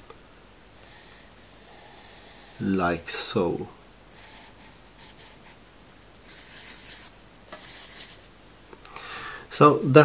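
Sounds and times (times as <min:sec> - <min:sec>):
pencil scratching on paper: 0:04.2 - 0:08.3.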